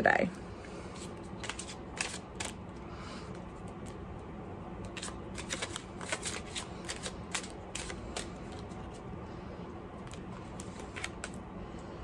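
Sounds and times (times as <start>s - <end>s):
cards shuffling: 0.9s - 2.6s, 4.8s - 9.0s, 10.0s - 11.4s.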